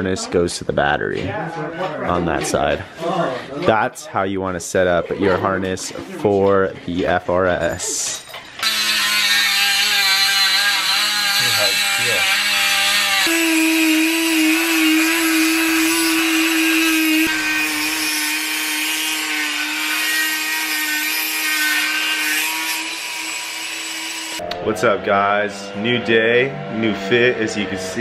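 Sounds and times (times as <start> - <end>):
rotary tool grinding metal rod: 8.6 - 24.4.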